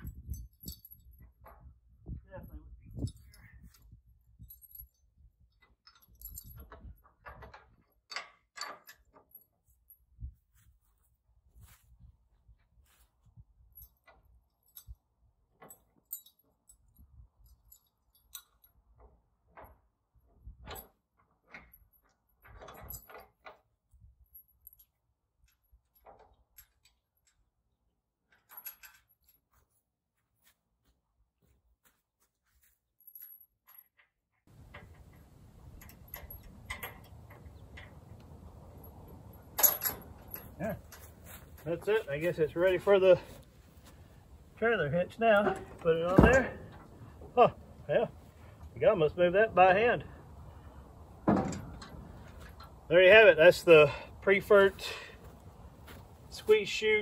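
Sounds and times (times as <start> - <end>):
metallic clicks and clinks: 0.0 - 1.7, 2.4 - 10.0, 13.6 - 15.0, 15.6 - 19.8, 20.6 - 27.6, 28.3 - 29.6, 33.0 - 43.5.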